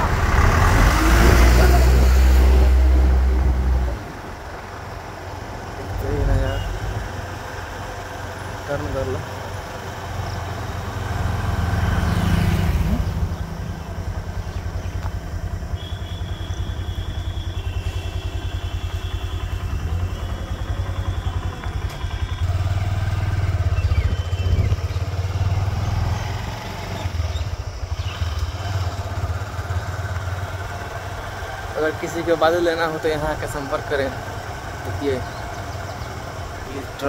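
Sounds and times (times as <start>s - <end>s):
motorcycle engine running: 0.0s - 37.0s
road noise: 0.0s - 37.0s.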